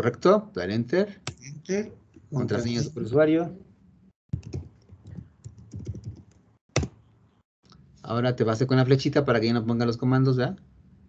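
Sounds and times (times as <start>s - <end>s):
keyboard typing: 4.3s - 7.0s.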